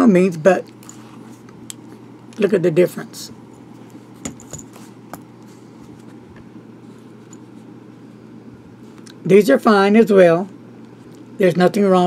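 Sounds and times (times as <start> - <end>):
low steady hum: 0.0 - 12.0
metallic clink: 4.2 - 4.8.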